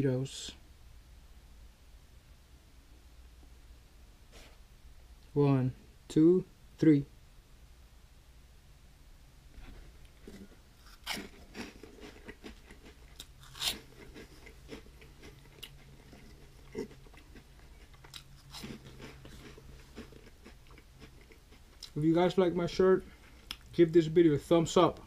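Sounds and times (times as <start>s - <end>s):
person chewing crunchy snacks: 10.0s - 22.1s, 23.0s - 23.7s.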